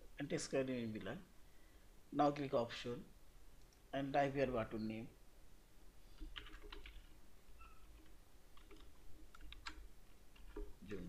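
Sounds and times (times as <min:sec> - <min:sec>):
faint keyboard typing: 0:06.1 - 0:11.0.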